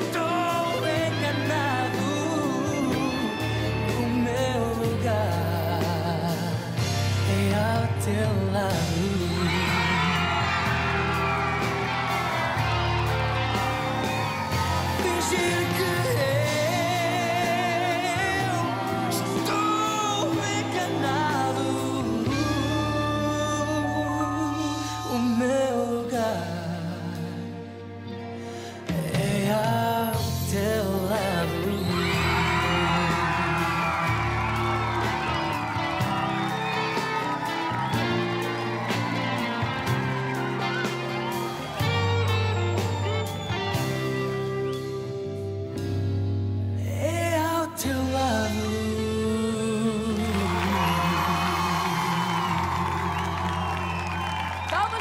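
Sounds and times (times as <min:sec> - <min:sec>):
steady bass line: 0:00.0 - 0:25.6, 0:29.2 - 0:47.1
pop-rock band playing live: 0:00.0 - 0:55.0
audience cheering and whooping: 0:08.6 - 0:25.3, 0:30.8 - 0:45.1, 0:49.5 - 0:55.0.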